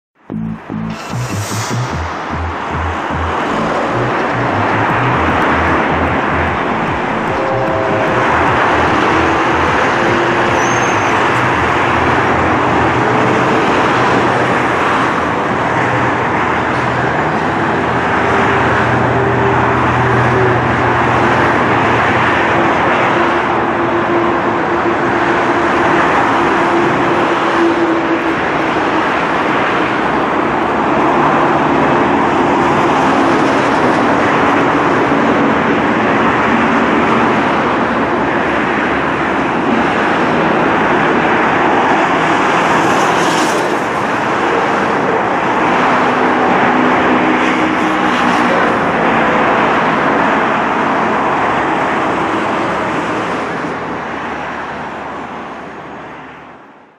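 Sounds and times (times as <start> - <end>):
motorway traffic rushing past: 0.4 - 56.6.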